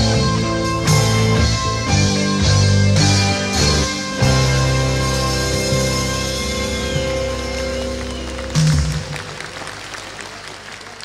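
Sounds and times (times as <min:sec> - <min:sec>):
live rock band: 0:00.0 - 0:10.3
crowd applause: 0:06.2 - 0:11.0.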